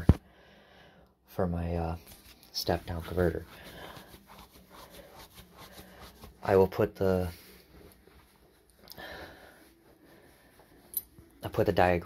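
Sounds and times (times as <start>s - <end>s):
faint breath: 0.2s - 1.2s, 8.8s - 11.0s.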